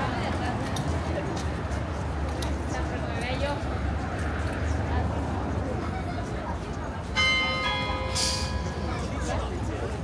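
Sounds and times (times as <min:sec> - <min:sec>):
hum of outdoor crowd: 0:00.0 - 0:10.0
large bell ringing: 0:07.2 - 0:09.6.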